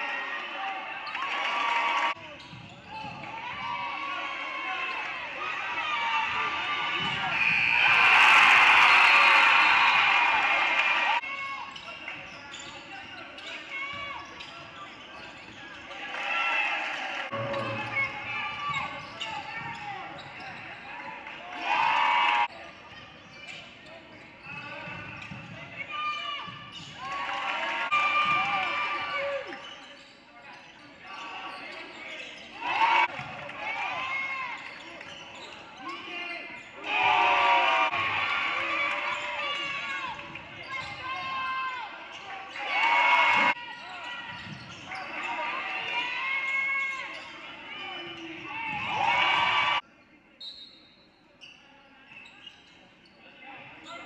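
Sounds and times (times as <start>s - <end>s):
players and spectators shouting: 3.2s - 11.8s, 21.0s - 22.5s, 25.8s - 29.6s, 32.5s - 34.8s, 35.8s - 44.3s, 44.9s - 49.8s.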